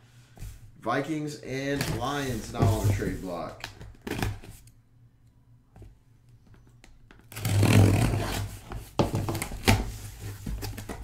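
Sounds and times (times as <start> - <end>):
cardboard scraping: 1.8 - 3.4, 7.3 - 11.0.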